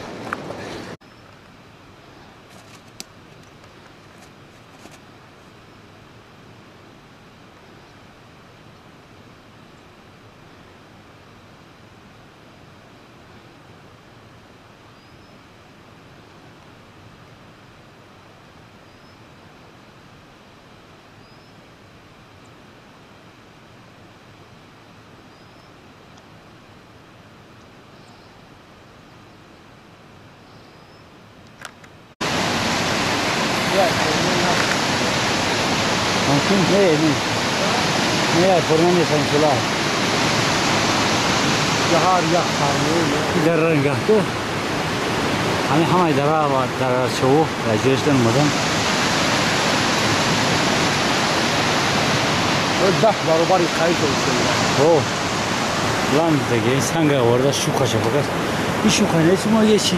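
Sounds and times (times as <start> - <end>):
loud close rush of water: 0.0 - 1.0, 32.2 - 59.9
distant waterfall rushing: 0.0 - 30.5, 31.2 - 59.9.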